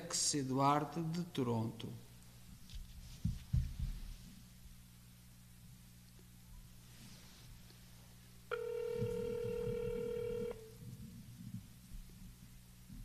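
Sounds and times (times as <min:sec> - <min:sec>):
telephone ringing tone: 0:08.5 - 0:10.8.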